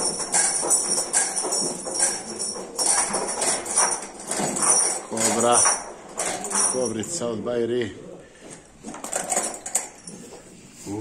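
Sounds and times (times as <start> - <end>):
metal chain jangling and clinking: 0.0 - 7.4, 8.8 - 10.6.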